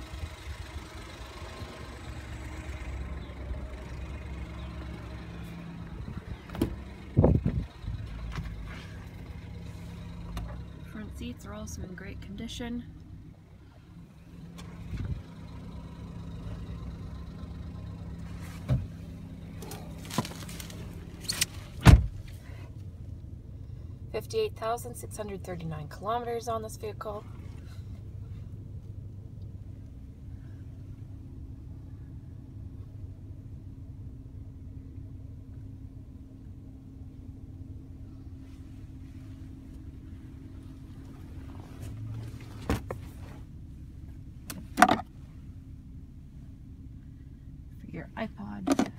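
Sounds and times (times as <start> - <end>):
car engine idling: 0.0 - 48.9
dull thump: 6.4 - 7.6, 18.6 - 19.0, 21.8 - 22.3.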